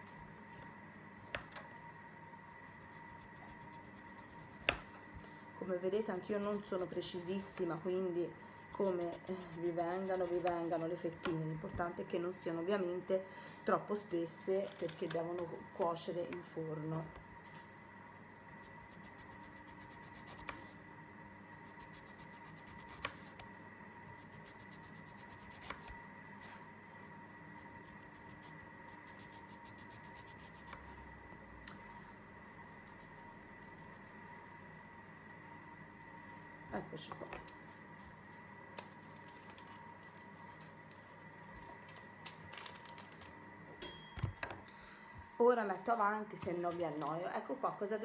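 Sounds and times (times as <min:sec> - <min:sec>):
faint high hum: 0:00.0 - 0:48.0.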